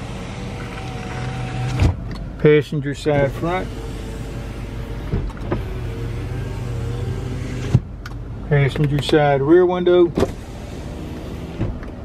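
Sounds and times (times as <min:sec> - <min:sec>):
power window motor running: 0:00.0 - 0:02.1, 0:03.1 - 0:07.9, 0:10.2 - 0:12.0.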